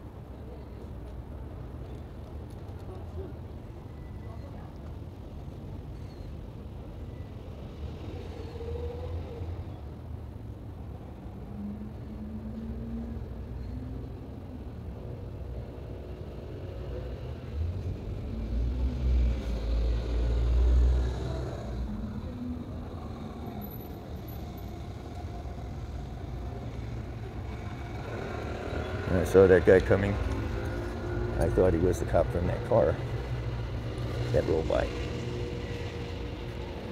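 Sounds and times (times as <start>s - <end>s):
traffic rumble: 0.0s - 36.9s
vehicle passing: 15.7s - 36.9s.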